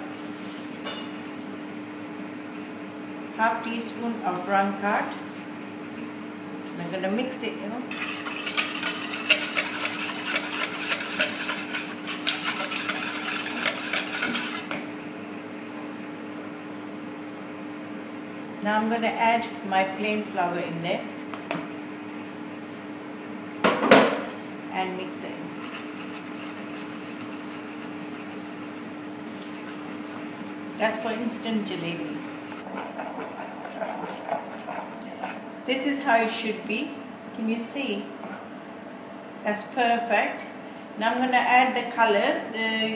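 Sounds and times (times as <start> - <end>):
steady low hum: 0.0 - 42.9
whisk clicking against plastic bowl: 8.2 - 14.8.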